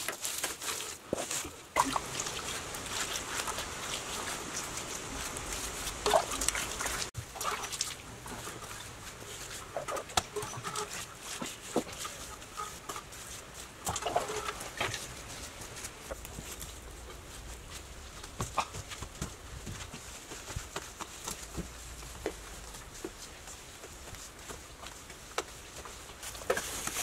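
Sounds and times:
light knocks and scrapes: 8.2 - 27.0.

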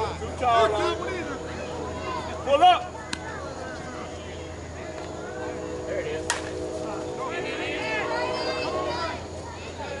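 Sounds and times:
players shouting: 0.0 - 10.0
bat cracking against ball: 6.3 - 6.6.

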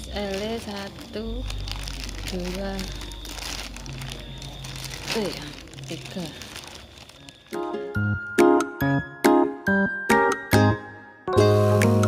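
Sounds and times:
plastic bags crinkling: 0.0 - 8.3.

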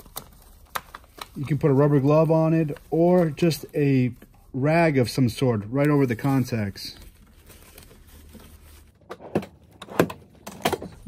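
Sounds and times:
rustles of person moving: 1.0 - 9.1.

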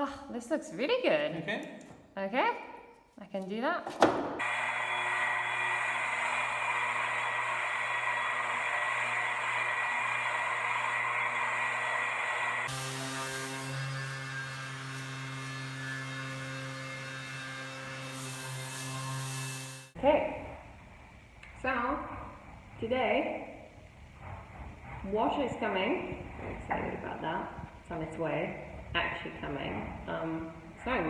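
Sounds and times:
orbital sander humming: 4.4 - 19.9.

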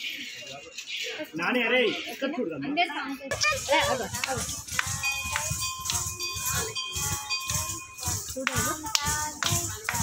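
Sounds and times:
ankle bells jingling: 0.0 - 10.0
voices: 0.0 - 10.0
rhythmic foot stamps: 3.3 - 10.0.

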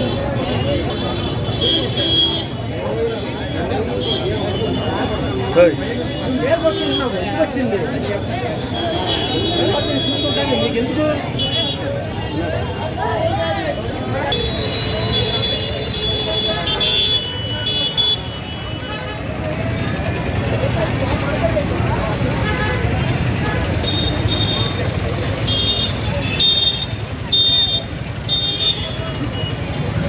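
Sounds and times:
crowd talking: 0.0 - 30.0
traffic rumble: 0.0 - 30.0.

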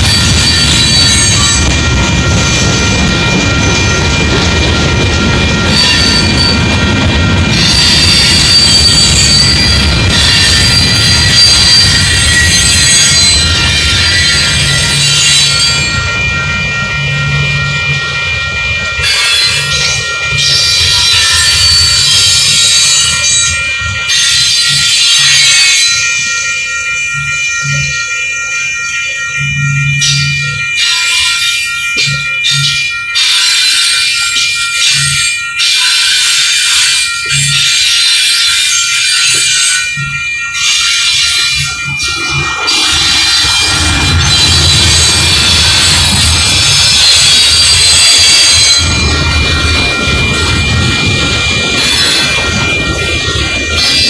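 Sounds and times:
freight train rumble: 0.0 - 54.0
high-pitched wheel squeal: 5.6 - 6.6, 7.5 - 16.1, 19.0 - 26.0, 40.6 - 54.0
wheels clacking over rail joints: 36.9 - 54.0.

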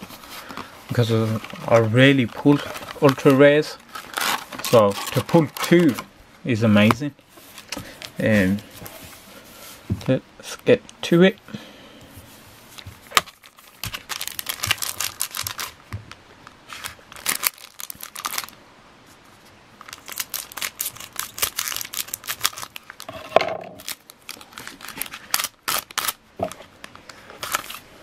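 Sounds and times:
plastic wrappers crinkling: 0.0 - 6.1, 12.7 - 18.6, 19.8 - 27.8.

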